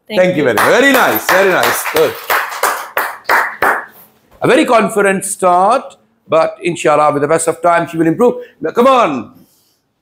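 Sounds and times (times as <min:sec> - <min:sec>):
small group clapping: 0:00.2 - 0:04.2.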